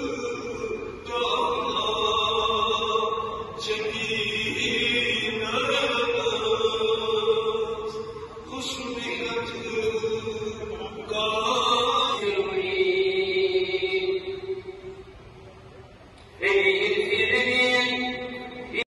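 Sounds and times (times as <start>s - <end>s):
man chanting into microphone: 0.0s - 14.8s, 16.4s - 18.8s.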